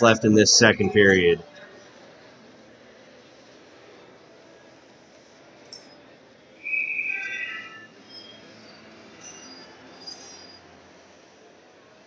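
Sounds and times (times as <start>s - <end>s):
shrill whistle-like squeal: 6.6s - 10.7s.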